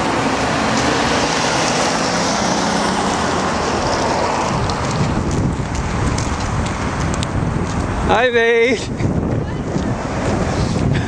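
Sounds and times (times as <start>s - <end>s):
wind blowing across microphone: 0.0s - 11.0s.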